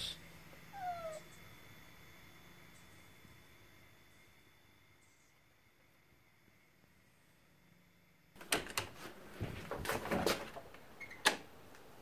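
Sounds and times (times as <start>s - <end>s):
cat meowing: 0.7s - 1.3s.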